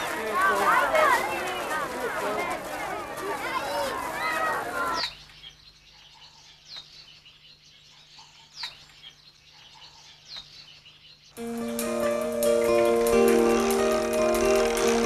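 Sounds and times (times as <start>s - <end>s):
background music sustained notes: 11.4s - 15.0s.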